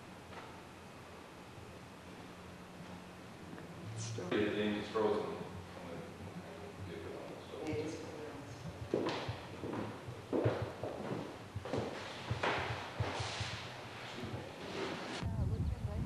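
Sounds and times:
footsteps on wooden floor: 0:08.5 - 0:15.2
wind rumble on microphone: 0:15.2 - 0:16.0.

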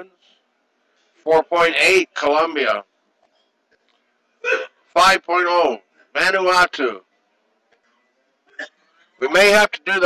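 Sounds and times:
man's hiccup-like throat catch: 0:04.4 - 0:04.8, 0:08.5 - 0:08.8.

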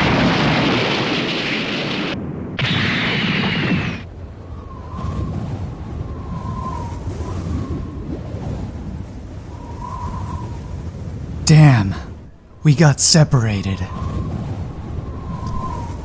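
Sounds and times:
rumbling explosion blast: 0:00.0 - 0:04.0.

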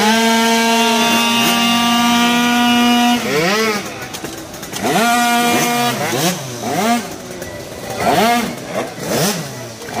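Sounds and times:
scooter engines revving: 0:00.0 - 0:10.0.

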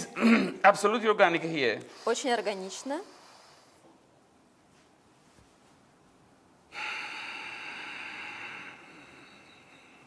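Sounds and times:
hard breath through mouth: 0:06.7 - 0:10.0.

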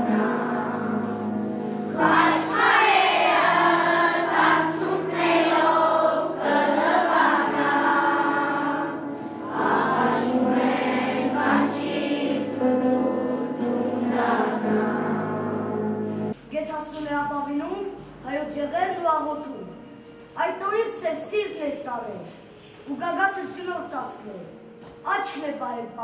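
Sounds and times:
children's choir singing: 0:00.0 - 0:16.4
sustained instrumental accompaniment: 0:00.0 - 0:16.5.

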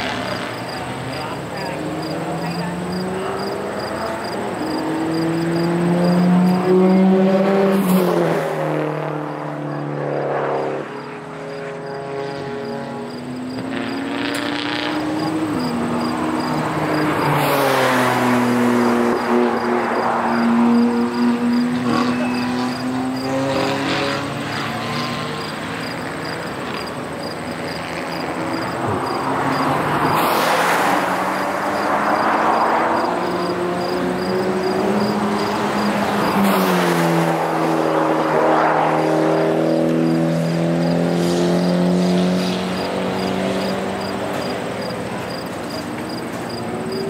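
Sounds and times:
race car engines revving: 0:00.0 - 0:47.0.

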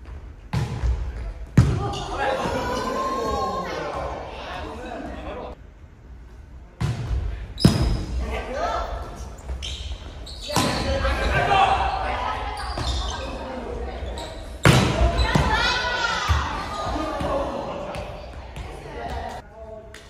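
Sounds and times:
players shouting: 0:01.8 - 0:04.4, 0:10.4 - 0:13.6, 0:14.8 - 0:19.4.

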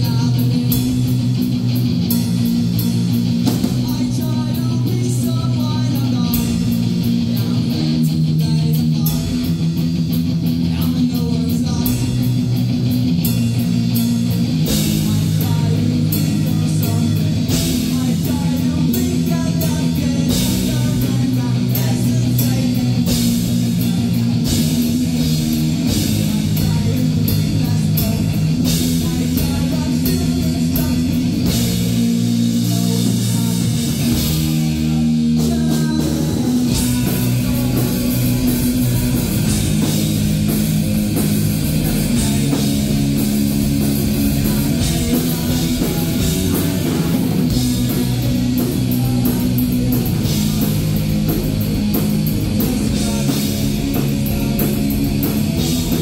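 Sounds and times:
drum kit with cymbal hits: 0:00.0 - 0:56.0
electric bass: 0:00.0 - 0:56.0
electric guitar: 0:00.0 - 0:56.0.

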